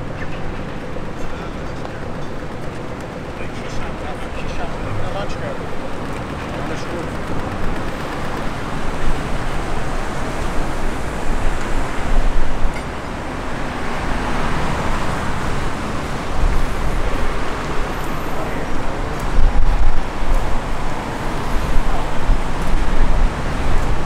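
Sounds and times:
cars driving past: 0.0s - 24.0s.

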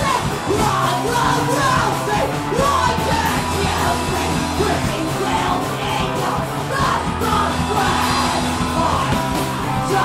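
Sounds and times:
distorted electric guitar: 0.0s - 10.0s
low bass notes: 0.0s - 10.0s.

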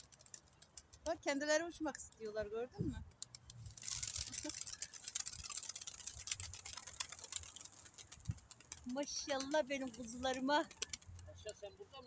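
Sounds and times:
pigeon wings clattering: 0.0s - 11.5s.

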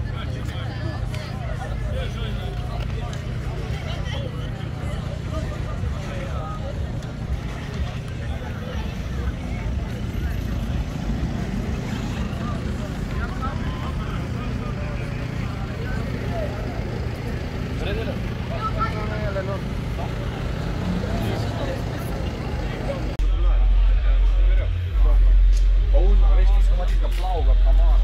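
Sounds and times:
car engine idling: 0.0s - 28.0s
people chattering: 0.0s - 28.0s.

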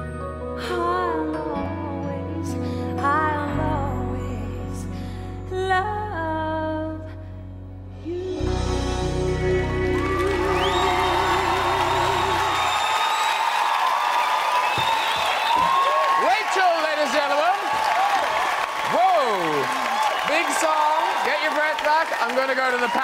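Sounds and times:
woman singing with vibrato: 0.6s - 7.2s, 8.0s - 12.9s
audience applauding and cheering: 9.0s - 23.0s.

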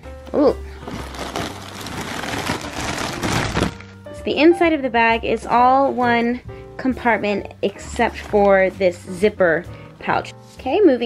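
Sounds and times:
plastic bag crinkling: 0.7s - 3.9s.

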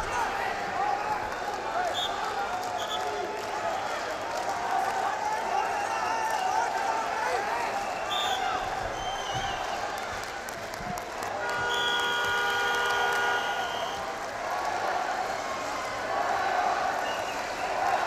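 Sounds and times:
arena crowd noise: 0.0s - 18.0s.

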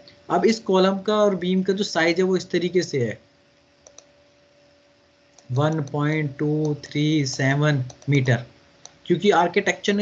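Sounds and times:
faint steady hum: 0.0s - 10.0s
sharp computer clicks: 3.8s - 4.2s, 5.3s - 9.7s.

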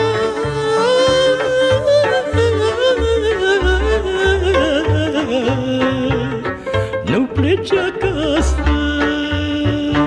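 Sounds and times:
man singing with vibrato: 0.0s - 10.0s.

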